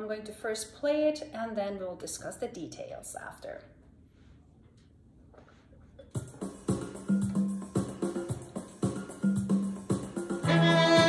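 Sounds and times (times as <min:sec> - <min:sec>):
violin playing: 0:10.4 - 0:11.0.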